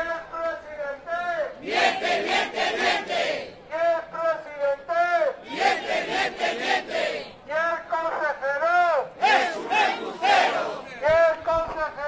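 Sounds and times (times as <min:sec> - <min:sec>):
crowd chanting: 0:01.6 - 0:03.6, 0:05.4 - 0:07.4, 0:09.2 - 0:10.9.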